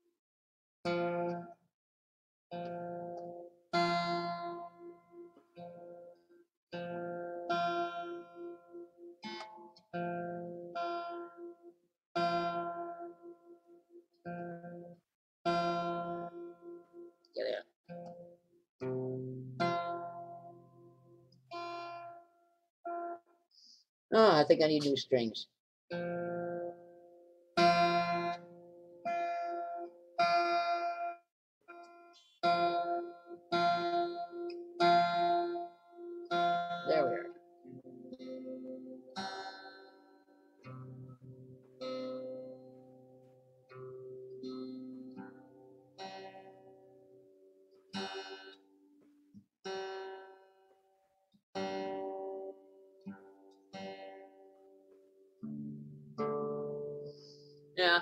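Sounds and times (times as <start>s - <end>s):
guitar strings plucked: 27.6s - 46.9s.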